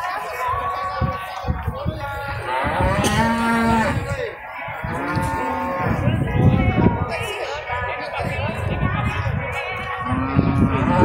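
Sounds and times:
cattle mooing: 0:02.4 - 0:04.1, 0:04.9 - 0:06.0, 0:10.1 - 0:11.0.

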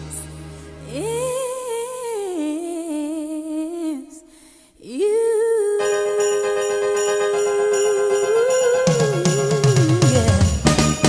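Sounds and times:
low backing chord: 0:00.0 - 0:02.0
woman singing with vibrato: 0:00.0 - 0:11.0.

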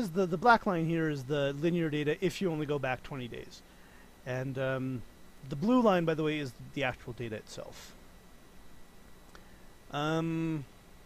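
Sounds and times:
man speaking: 0:00.0 - 0:03.6, 0:04.3 - 0:08.0, 0:09.9 - 0:10.7
faint low hum: 0:00.0 - 0:11.0.

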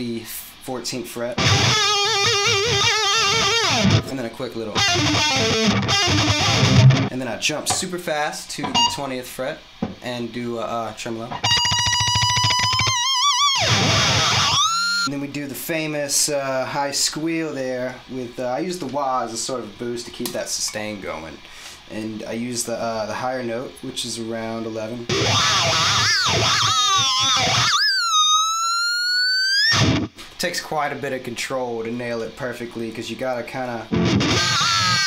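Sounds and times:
distorted electric guitar vibrato: 0:01.4 - 0:04.1, 0:04.8 - 0:07.1, 0:11.3 - 0:15.1, 0:25.1 - 0:30.1, 0:33.9 - 0:35.0.

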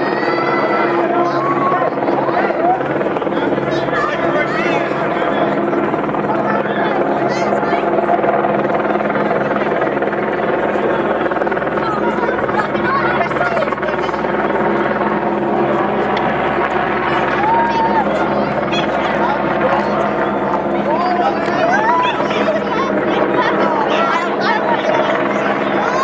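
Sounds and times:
steady mechanical drone: 0:00.0 - 0:26.0
voices talking: 0:00.0 - 0:26.0.

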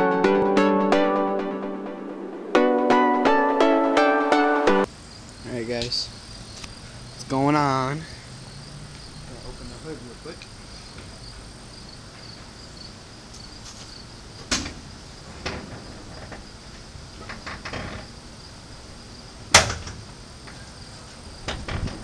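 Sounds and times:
crickets chirping: 0:04.9 - 0:22.0.

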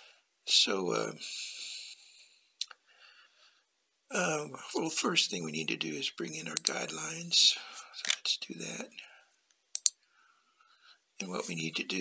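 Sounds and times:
computer mouse clicks: 0:09.8 - 0:10.0.

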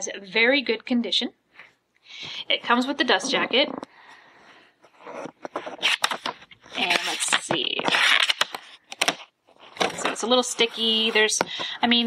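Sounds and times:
paper rustling of book pages: 0:04.8 - 0:12.0.

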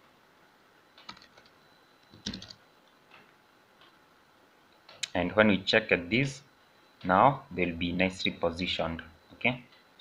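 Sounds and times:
keyboard typing: 0:01.0 - 0:02.6.

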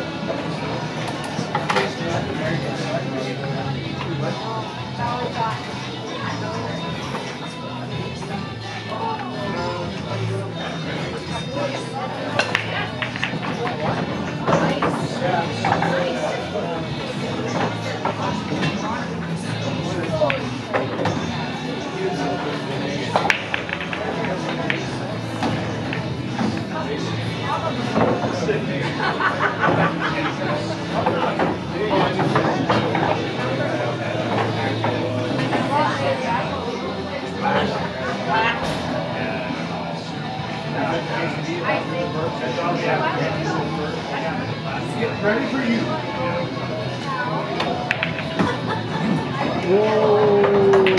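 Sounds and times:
background chatter: 0:00.0 - 0:50.9
background conversation: 0:00.0 - 0:50.9
faint music: 0:00.0 - 0:50.9.

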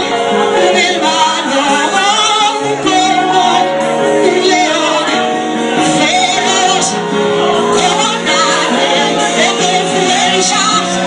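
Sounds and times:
instrumental accompaniment: 0:00.0 - 0:11.0
woman singing with vibrato: 0:07.7 - 0:11.0.

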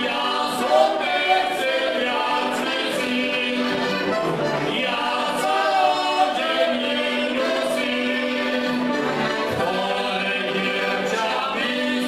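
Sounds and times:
button accordions: 0:00.0 - 0:12.0
men singing in harmony: 0:00.0 - 0:12.0.

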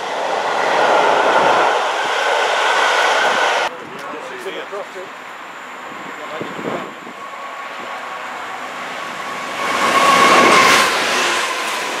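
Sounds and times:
rushing train wheels: 0:00.0 - 0:12.0
train passing: 0:00.0 - 0:12.0.

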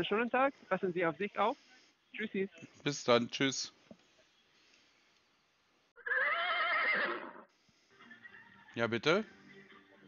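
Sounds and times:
wavering animal cry: 0:06.0 - 0:07.5.

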